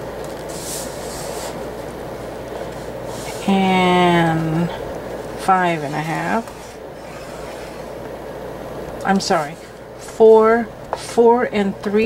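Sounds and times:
steady low hum: 0.0s - 12.0s
bone folder scraping paper: 5.8s - 8.0s.

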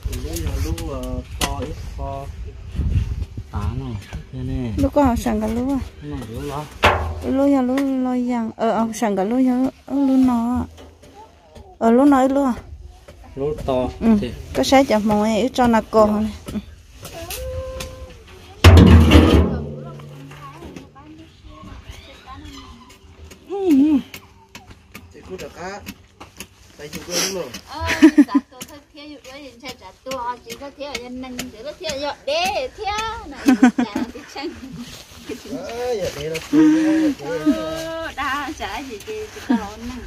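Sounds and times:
metal drum clanging: 6.8s - 7.8s, 18.6s - 20.9s
people talking and laughing: 16.2s - 26.1s, 26.9s - 40.0s.

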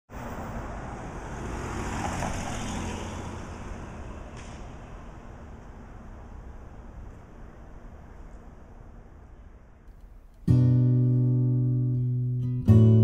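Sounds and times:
car passing: 0.1s - 13.0s.

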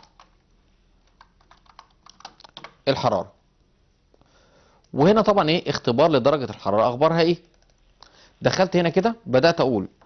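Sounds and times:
computer keyboard typing: 0.0s - 0.4s, 1.0s - 2.8s, 7.4s - 7.9s.

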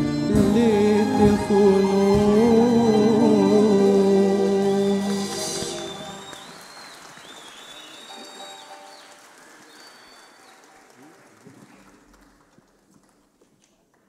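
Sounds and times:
whistles: 4.5s - 10.8s
audience applause: 4.6s - 14.0s
cheers: 4.8s - 11.9s.

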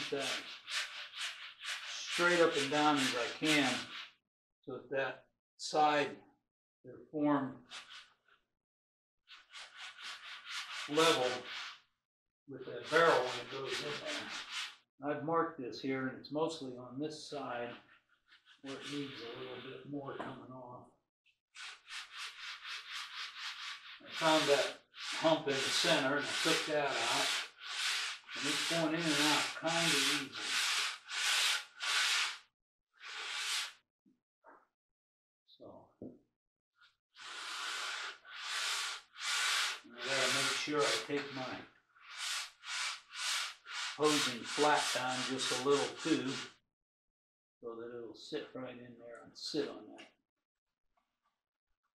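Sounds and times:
sandpaper rubbing on wood: 0.0s - 4.1s, 7.7s - 8.1s, 9.3s - 11.8s, 12.8s - 14.8s, 17.8s - 19.8s, 21.6s - 33.8s, 37.2s - 46.5s.

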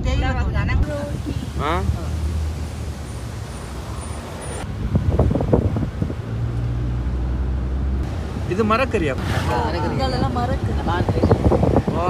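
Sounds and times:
vehicle engine and tyres rumbling: 0.0s - 12.0s.

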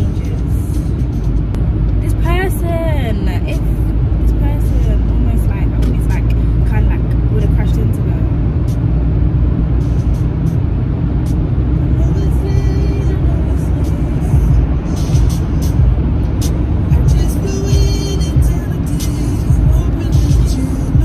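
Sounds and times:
car engine and tyres rumbling: 0.0s - 21.0s
music from car stereo: 0.0s - 21.0s
woman's voice: 2.0s - 8.3s.

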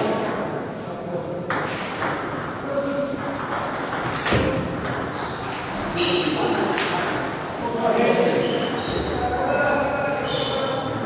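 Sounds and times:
ping pong balls clicking: 1.4s - 8.0s.

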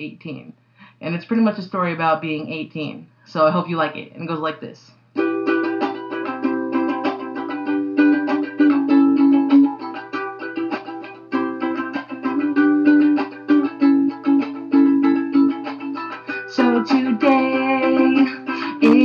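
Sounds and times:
ukulele strummed: 5.2s - 19.0s.

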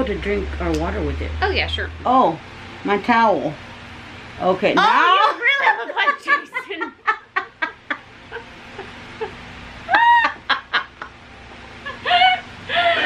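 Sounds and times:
woman cackling laughter: 6.0s - 11.1s, 11.8s - 13.0s.

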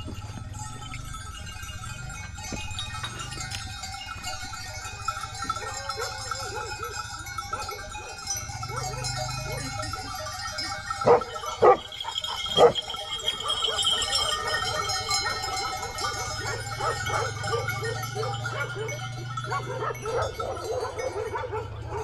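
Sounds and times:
bells ringing: 0.0s - 22.0s.

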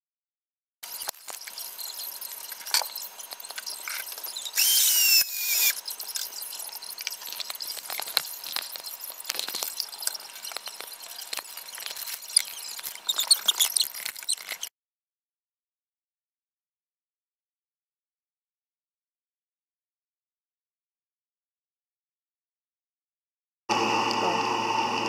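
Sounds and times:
loud hiss with falling squeal: 4.6s - 5.8s
plastic bag crinkling and crackling: 7.1s - 14.7s.

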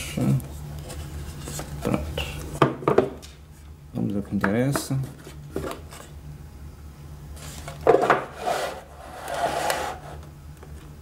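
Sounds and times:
box parts rubbing and sliding: 7.4s - 10.2s.

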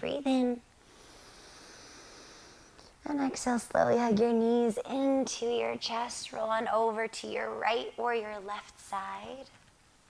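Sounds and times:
person inhaling slowly: 0.8s - 2.9s.

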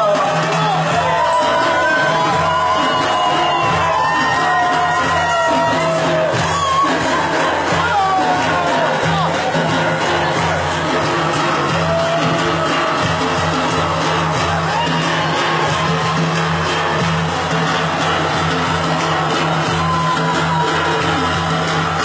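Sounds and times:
frame drums beating: 0.0s - 22.0s.

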